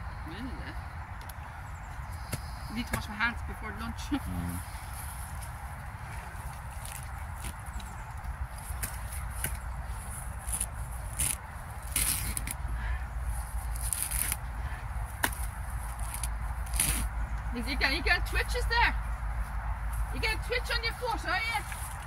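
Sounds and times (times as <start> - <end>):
grass ripping by hand: 6.2 - 12.7, 13.4 - 14.5, 15.1 - 17.4.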